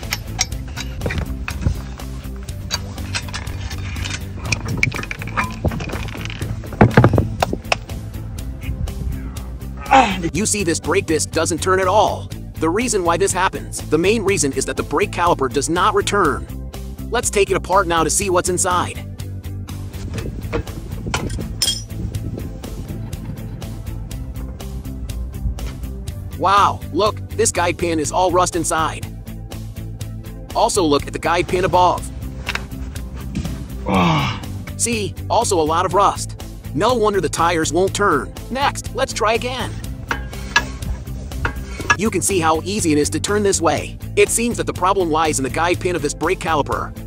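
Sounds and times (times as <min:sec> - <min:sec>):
wrench clinking on metal: 0:00.0 - 0:06.5, 0:21.2 - 0:22.0, 0:39.9 - 0:42.1
background music: 0:00.0 - 0:47.0
brake pads scraping on disc: 0:32.2 - 0:33.8, 0:39.6 - 0:42.0.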